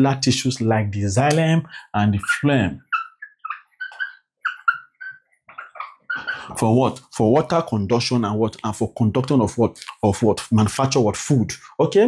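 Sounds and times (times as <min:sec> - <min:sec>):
marker squeaking on a whiteboard: 0:02.0 - 0:07.0.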